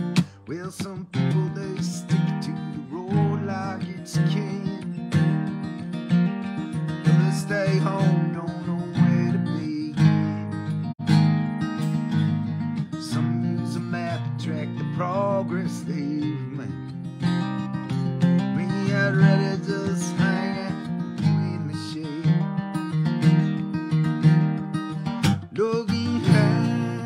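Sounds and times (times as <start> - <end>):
acoustic guitar strumming: 0.0 - 27.0.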